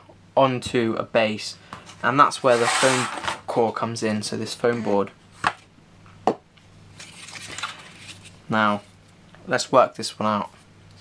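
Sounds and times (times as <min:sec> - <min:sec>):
board sliding across mat: 0:02.4 - 0:03.5.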